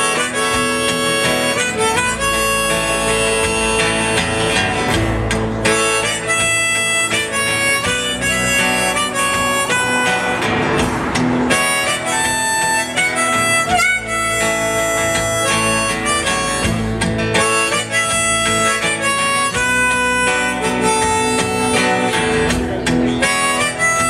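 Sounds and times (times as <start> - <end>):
harmonica solo: 0.0 - 24.0
strummed acoustic guitar: 0.0 - 24.0.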